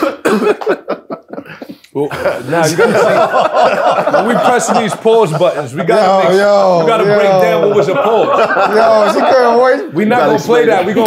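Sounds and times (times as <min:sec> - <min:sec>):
man coughing: 0:00.0 - 0:01.8.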